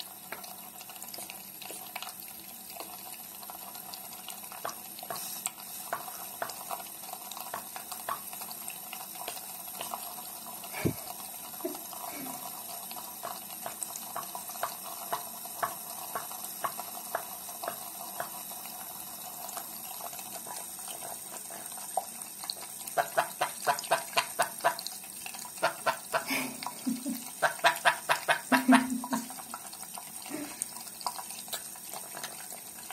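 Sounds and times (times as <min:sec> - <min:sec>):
tap water running into sink: 0:00.0 - 0:32.9.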